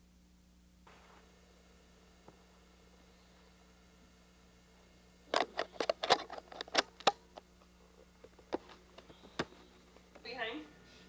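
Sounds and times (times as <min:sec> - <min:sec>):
camcorder handling clicks and knocks: 0:05.3 - 0:07.2.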